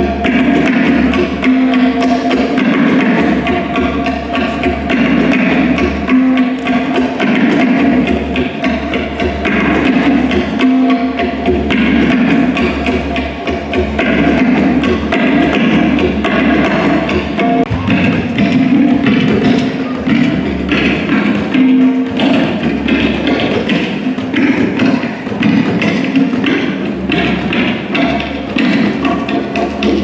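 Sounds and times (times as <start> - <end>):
tabla playing fast strokes: 0.0 - 30.0.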